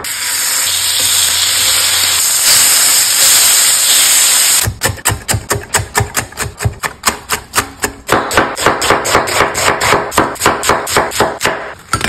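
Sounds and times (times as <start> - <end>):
knife chopping crispy bacon: 4.6 - 11.8.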